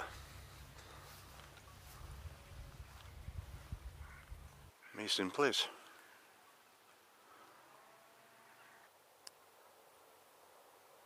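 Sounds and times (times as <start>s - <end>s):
faint outdoor background hiss: 0.0s - 11.0s.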